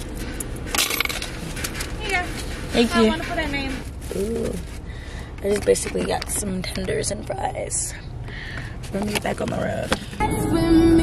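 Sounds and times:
clatter of items handled: 0.0 - 7.5, 8.6 - 10.2
car low steady hum: 0.0 - 11.0.

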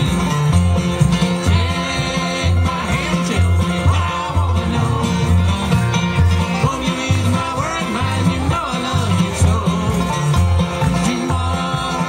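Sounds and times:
acoustic guitar: 0.0 - 12.0
banjo picking: 0.0 - 12.0
fiddle: 0.0 - 12.0
upright bass: 0.0 - 12.0.

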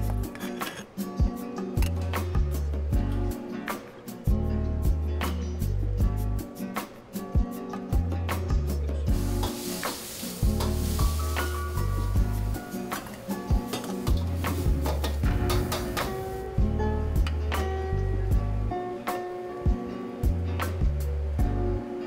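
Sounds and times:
background music with beat and bass: 0.0 - 22.0
food sizzling in a wok: 9.1 - 17.1.

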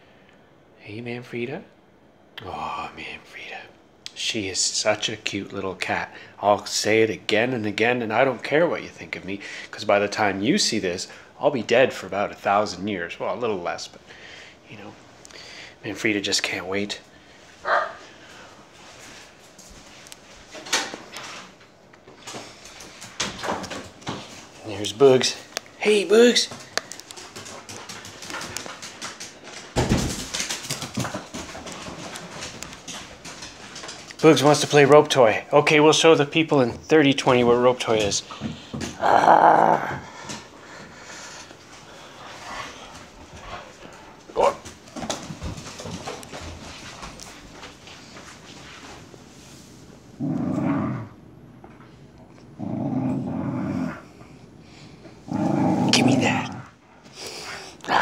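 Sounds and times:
dog claws clicking on floor: 22.2 - 24.6, 26.5 - 34.7
dog growling: 39.0 - 41.2, 50.2 - 51.2, 52.4 - 54.3, 55.2 - 56.8.

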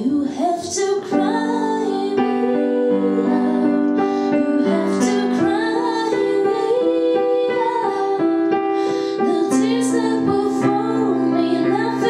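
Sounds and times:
piano chords: 0.0 - 12.0
woman singing pop ballad: 0.0 - 12.0.

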